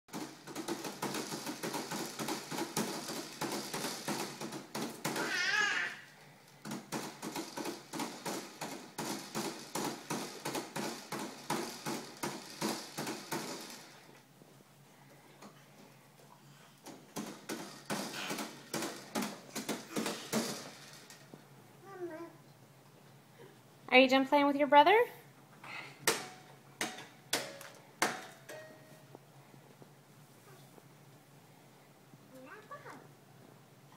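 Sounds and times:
plastic toys clattering: 0.1 - 14.2, 16.8 - 21.4.

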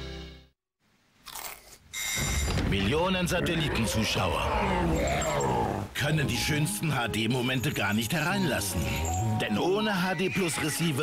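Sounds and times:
music: 0.0 - 0.5, 6.0 - 11.0.

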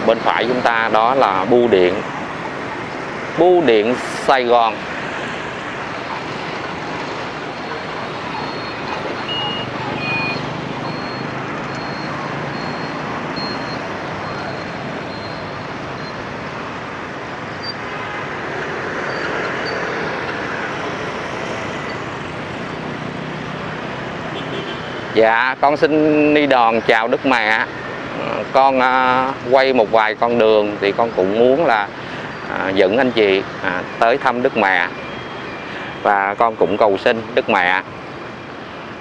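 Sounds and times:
motorbike and car engines: 0.0 - 39.0
faint high beep: 8.3 - 16.2.

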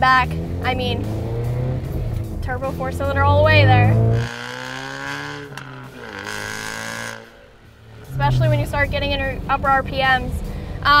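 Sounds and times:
car exhaust drone: 0.0 - 11.0.

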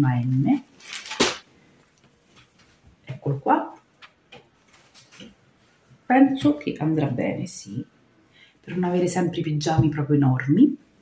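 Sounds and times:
faint handling sounds: 0.2 - 3.0, 3.9 - 6.0.

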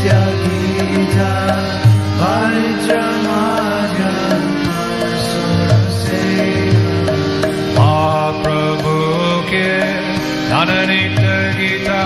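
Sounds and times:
person singing: 0.0 - 12.0
sustained drone chord: 0.0 - 12.0.

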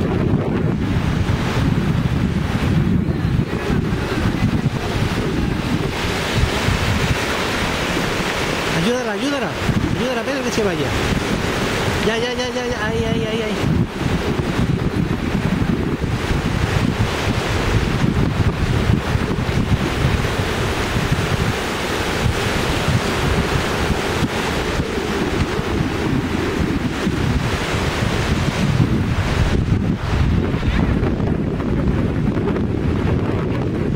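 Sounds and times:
small waves washing in: 0.0 - 33.9
wind noise on microphone: 0.0 - 33.9.

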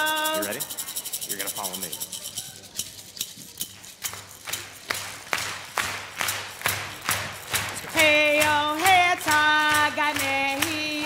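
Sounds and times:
hand rattle shaking: 0.0 - 11.0.

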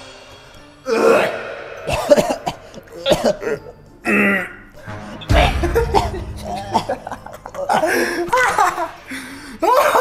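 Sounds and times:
strained vocal sound: 0.8 - 5.6
men gagging: 0.9 - 4.5, 5.3 - 10.0
men coughing: 1.3 - 4.4, 5.4 - 8.9.

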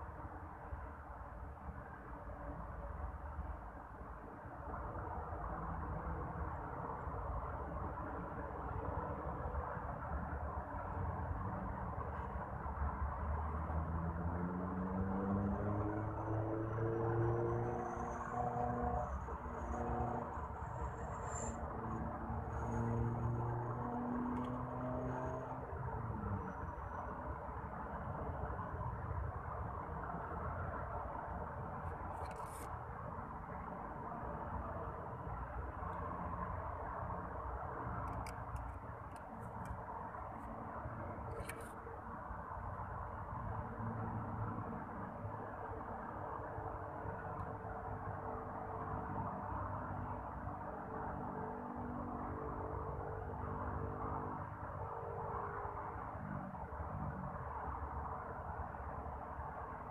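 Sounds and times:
distant road traffic: 0.0 - 59.9.

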